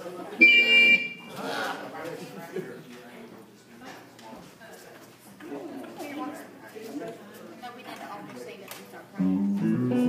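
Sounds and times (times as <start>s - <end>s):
high electronic tone: 0.4s - 1.3s.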